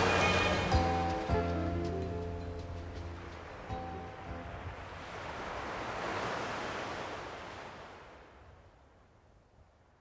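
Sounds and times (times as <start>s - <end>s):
music: 0.0s - 4.8s.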